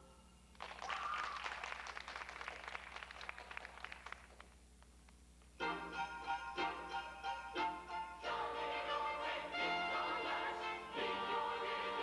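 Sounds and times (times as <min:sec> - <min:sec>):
audience applauding: 0:00.6 - 0:04.6.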